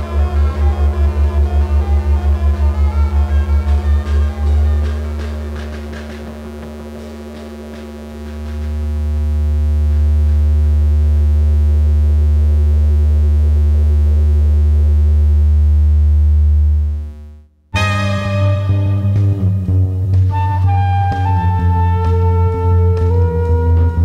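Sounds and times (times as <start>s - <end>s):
loud electric hum with overtones: 0.0s - 24.0s.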